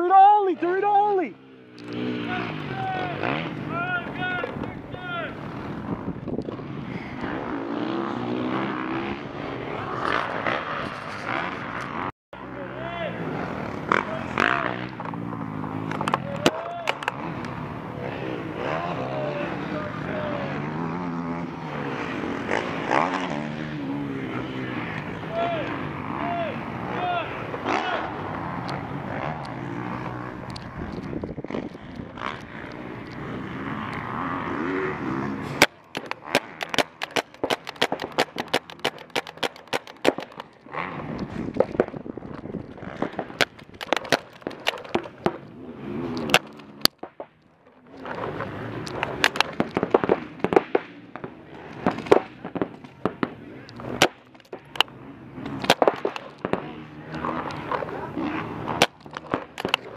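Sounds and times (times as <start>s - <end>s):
paintballs striking bunkers: 13.4s - 59.9s
paintball markers firing: 35.4s - 45.5s, 46.1s - 59.9s.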